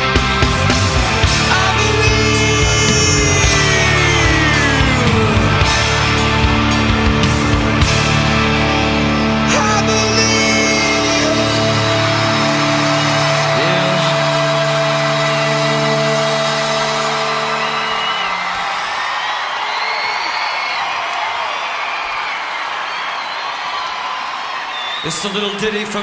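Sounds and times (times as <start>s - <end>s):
rock band closing chord: 0.0s - 19.2s
crowd cheering and whooping: 0.0s - 25.6s.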